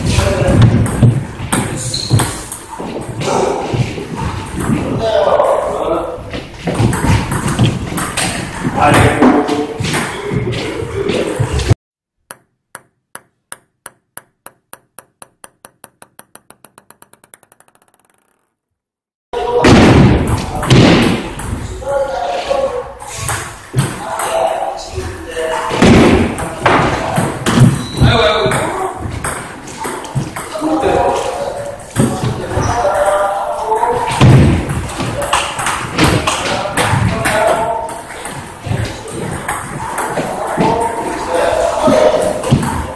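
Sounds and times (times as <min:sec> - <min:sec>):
ping-pong ball bouncing: 0:12.2 - 0:18.6
ping-pong ball clicks on bats: 0:12.3 - 0:18.6.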